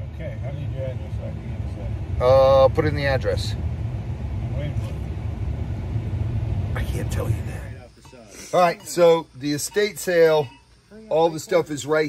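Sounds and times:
car engine rumble in cabin: 0.0s - 8.0s.

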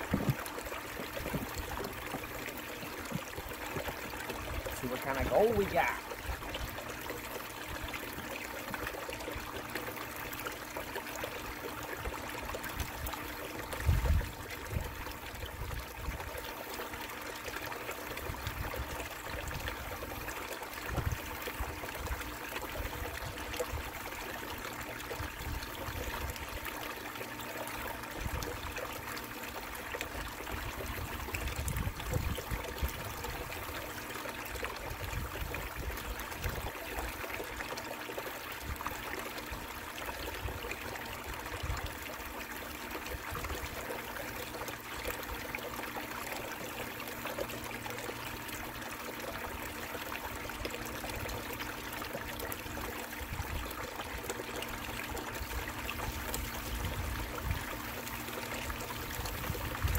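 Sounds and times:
faint steady hum: 0.0s - 59.9s
water pouring into bucket: 0.0s - 59.9s.

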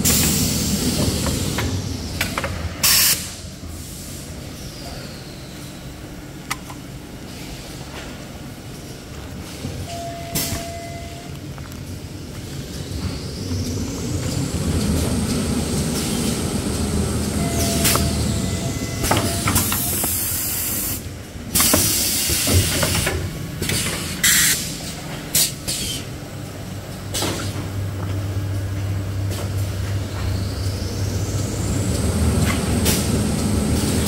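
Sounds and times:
machinery humming: 0.0s - 34.0s
compressed air hiss: 2.8s - 4.3s, 25.4s - 26.1s.

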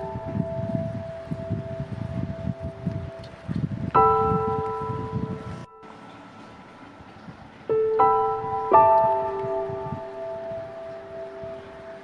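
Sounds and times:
gentle solo piano: 0.0s - 12.0s.

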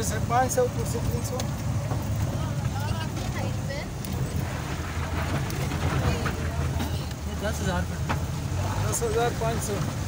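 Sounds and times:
jeep engine running: 0.0s - 10.0s.

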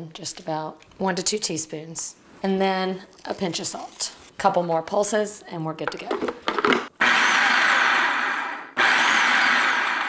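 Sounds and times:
food processor motor and blade: 6.6s - 10.0s.

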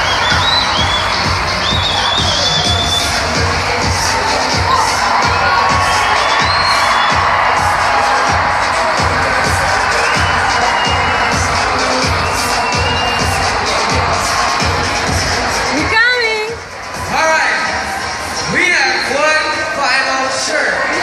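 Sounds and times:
crowd cheering and shouting: 0.0s - 21.0s
loud music with steady beat: 0.0s - 21.0s
high whoops and shouts: 4.1s - 14.8s.

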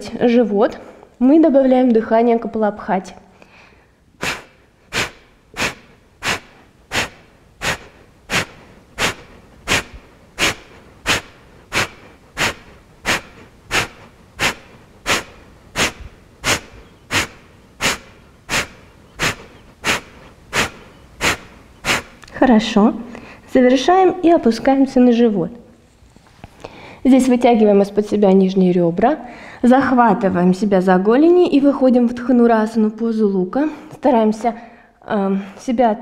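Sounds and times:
woman's forceful nasal exhalations: 3.4s - 22.3s.

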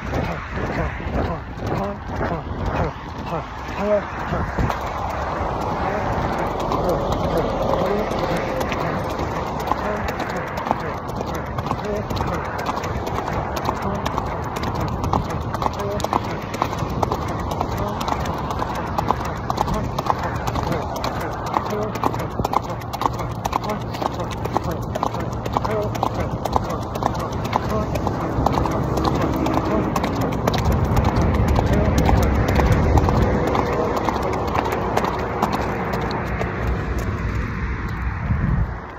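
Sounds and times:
horse hoofbeats on sand: 0.0s - 37.5s
road traffic rumble: 0.0s - 38.9s.

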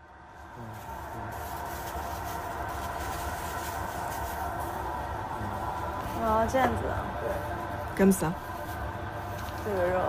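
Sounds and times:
kitchen equipment rumble and hum: 0.0s - 10.0s.

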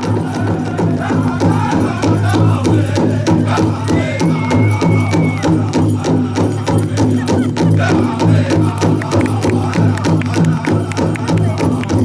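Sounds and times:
drum beating steadily: 0.0s - 12.0s
voices singing: 0.0s - 12.0s.

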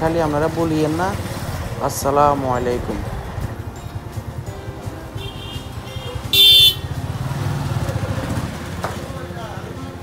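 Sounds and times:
small engine rumbling: 0.0s - 10.0s
high-pitched vehicle horn toot: 5.2s - 6.9s.

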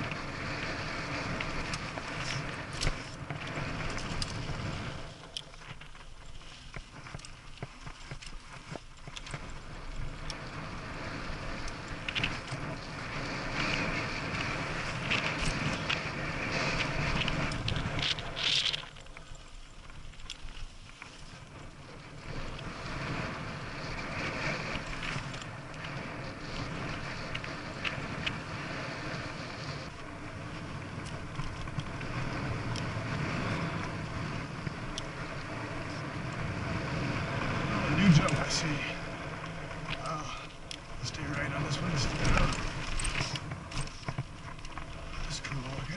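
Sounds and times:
bike rattling over bumps: 0.0s - 45.9s
tyre and wind noise: 0.0s - 45.9s.

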